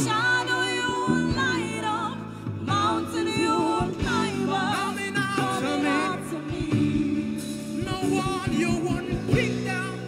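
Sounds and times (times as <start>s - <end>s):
acoustic drum kit: 0.0s - 10.0s
band playing: 0.0s - 10.0s
voices singing gospel: 0.0s - 10.0s.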